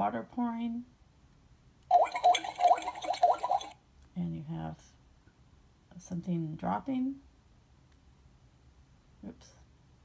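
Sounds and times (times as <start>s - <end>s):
water pouring from small speaker: 1.9s - 3.8s.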